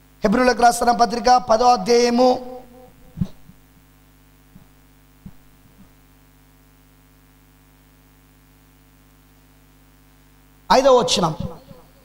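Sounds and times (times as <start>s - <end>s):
electrical hum: 0.0s - 12.0s
microphone handling thumps: 3.0s - 3.9s, 4.5s - 6.2s.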